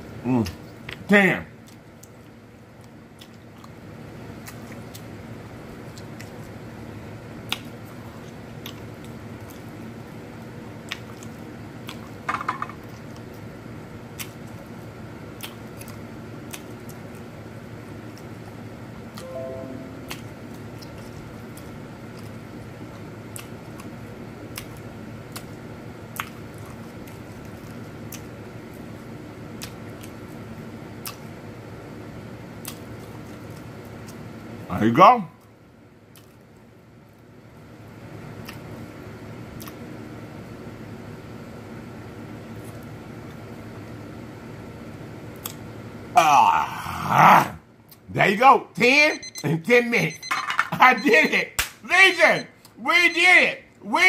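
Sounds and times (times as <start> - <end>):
person chewing with wet mouth sounds: 1.6 - 5.2, 5.8 - 6.6, 7.4 - 12.2, 12.8 - 17.3, 20.0 - 31.4, 32.5 - 34.3, 35.4 - 37.2, 38.4 - 38.9, 39.5 - 39.9, 45.3 - 45.7.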